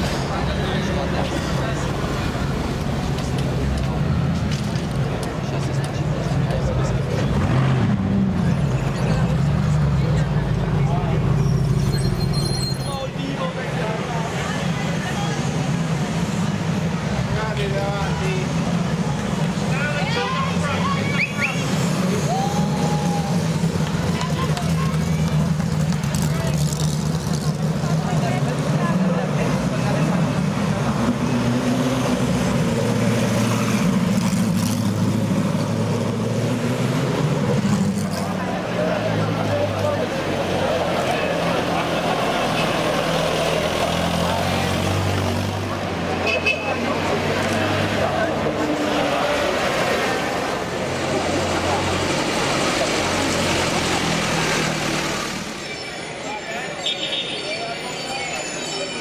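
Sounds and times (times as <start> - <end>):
car engines humming: 0.0 - 56.9
crowd chatter: 0.0 - 59.0.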